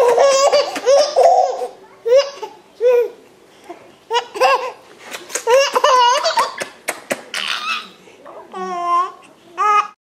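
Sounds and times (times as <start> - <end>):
baby laughing: 0.0 - 3.2, 4.1 - 10.0.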